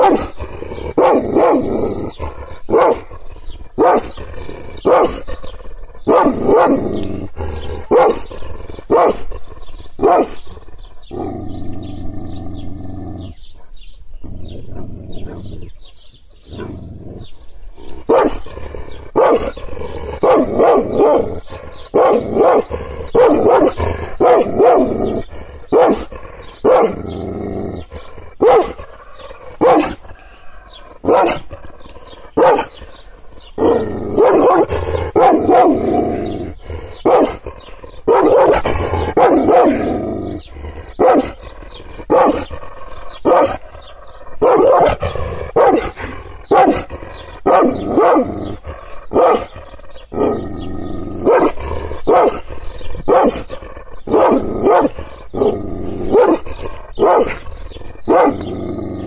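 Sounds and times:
dog barking angrily: 0.0 - 11.8, 17.8 - 59.0.

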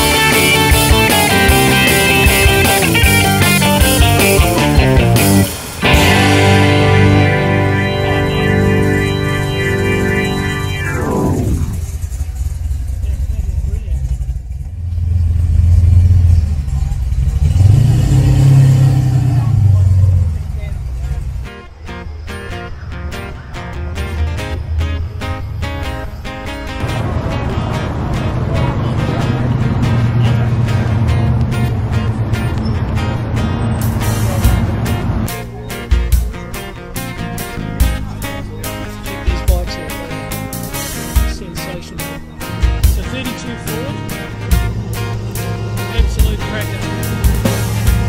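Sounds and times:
music: 0.0 - 11.8, 20.4 - 48.0
car engine revving: 0.0 - 22.2, 22.8 - 35.4, 38.7 - 48.0
car engines running: 0.0 - 48.0
people talking: 5.8 - 14.3, 16.3 - 17.4, 18.5 - 22.7, 25.2 - 33.1, 34.0 - 44.7, 45.4 - 48.0.

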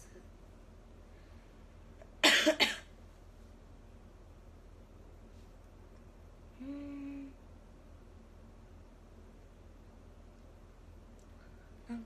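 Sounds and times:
woman coughing: 2.2 - 2.9.

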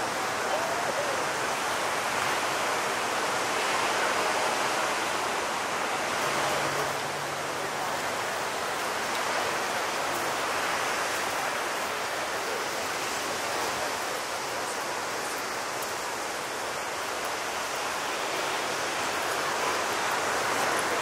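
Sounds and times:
ocean surf breaking: 0.0 - 21.0.

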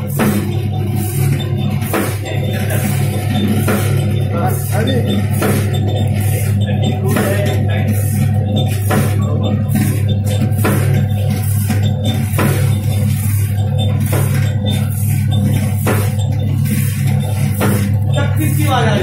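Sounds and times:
machine clacking: 0.0 - 19.0
machine motor hum: 0.0 - 19.0.

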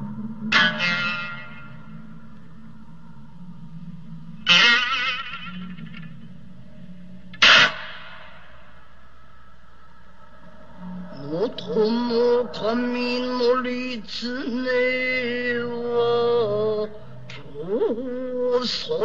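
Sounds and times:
lute plucked strokes: 0.0 - 18.6
low steady hum: 0.0 - 19.0.

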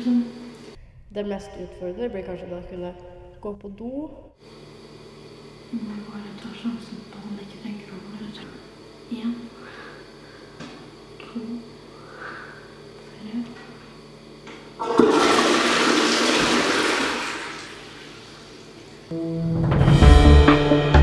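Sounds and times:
toilet flushing: 14.8 - 19.1
music: 19.1 - 21.0.

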